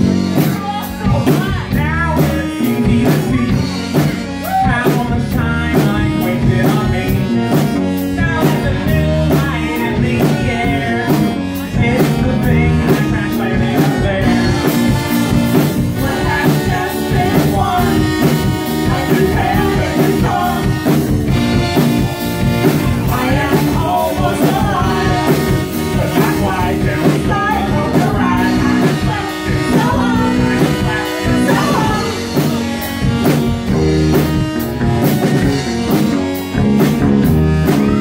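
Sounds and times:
drum kit with hi-hat beat: 0.0s - 38.0s
electric bass: 0.0s - 38.0s
keyboard: 0.0s - 38.0s.

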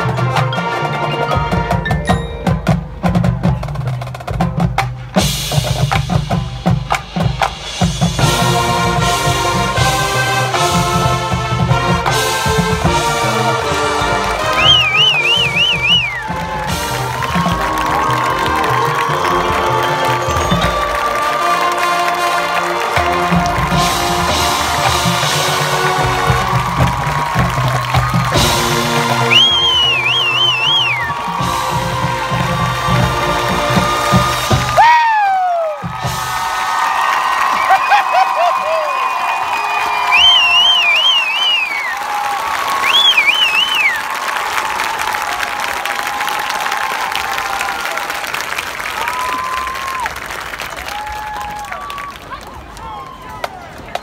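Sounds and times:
marching band playing over drums: 0.0s - 38.0s
crowd cheering and applause: 7.8s - 54.0s.

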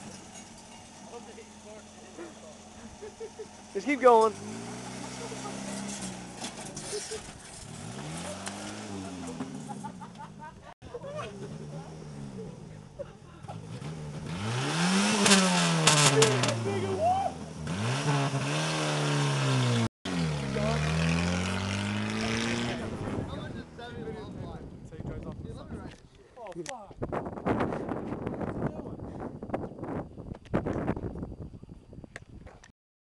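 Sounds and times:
car engine revving past: 4.2s - 9.7s, 13.4s - 16.9s, 17.6s - 23.6s.

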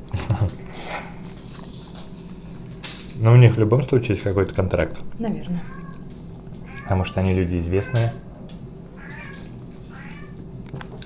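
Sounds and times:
high-pitched meow-like cries: 9.0s - 10.4s.

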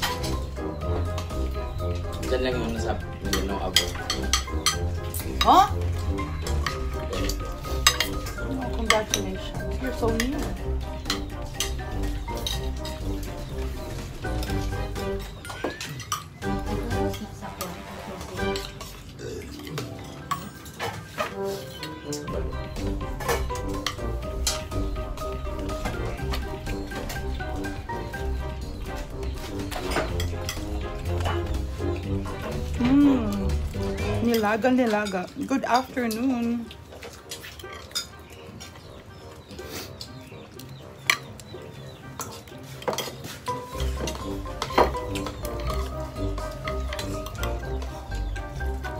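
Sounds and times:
spoons clinking against bowls: 0.0s - 13.2s, 14.3s - 17.8s, 18.4s - 28.2s, 29.2s - 32.7s, 33.6s - 48.9s
background music: 0.0s - 48.9s.

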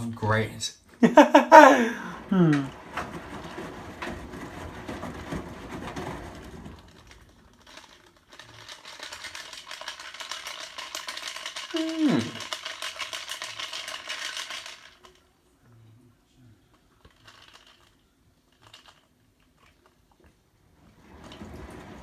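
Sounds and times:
washing machine sloshing: 1.6s - 7.7s, 20.5s - 22.0s.

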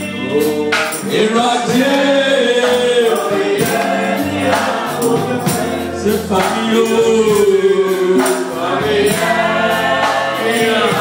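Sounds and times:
congregation singing worship song: 0.0s - 11.0s
sharp percussion hits: 0.0s - 11.0s.

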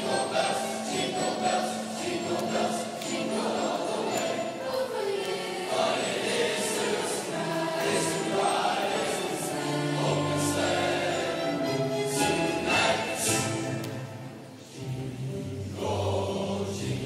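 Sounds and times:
children's choir singing: 0.0s - 17.0s.

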